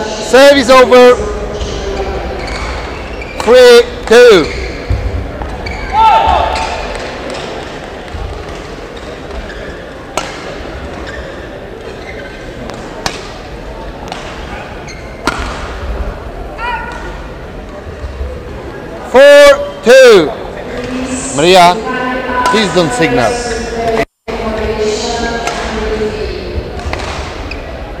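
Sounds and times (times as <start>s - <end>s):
shoes squeaking on court floor: 1.9s - 15.6s, 26.6s - 28.0s
person shouting: 5.9s - 6.6s
racket striking shuttlecock: 10.1s - 10.5s, 12.7s - 13.4s, 15.2s - 15.7s.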